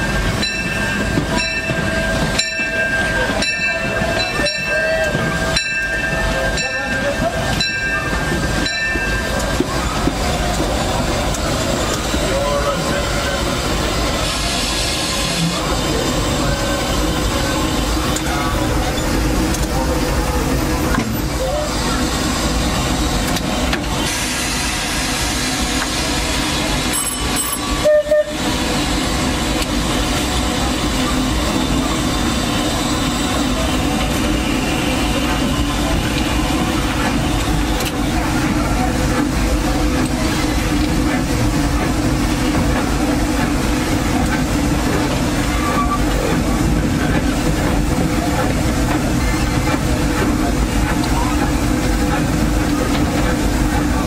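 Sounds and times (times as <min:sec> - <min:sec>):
rail and running gear noise: 0:00.0 - 0:54.0
steam hissing: 0:07.3 - 0:54.0.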